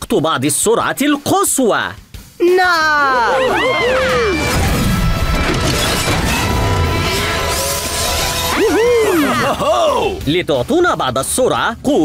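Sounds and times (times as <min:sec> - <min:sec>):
cartoon background music: 0:00.1 - 0:12.0
swooping arching tones: 0:03.3 - 0:10.2
loud rushing and crashing noise: 0:04.4 - 0:09.1.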